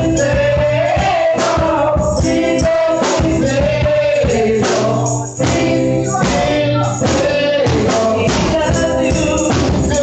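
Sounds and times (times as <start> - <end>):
drum kit with cymbals: 0.0 - 10.0
steady bass: 0.0 - 10.0.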